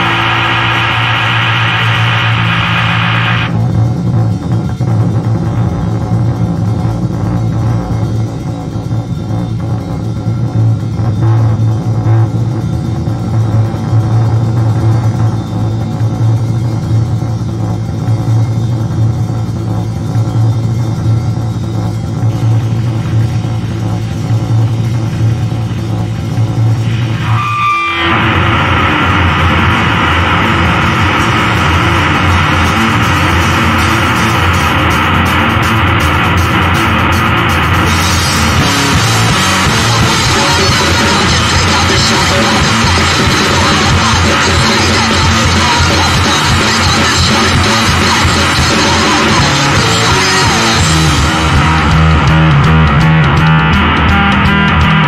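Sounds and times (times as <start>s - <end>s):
droning bass note: 0.0s - 55.0s
noise punk band playing: 0.0s - 55.0s.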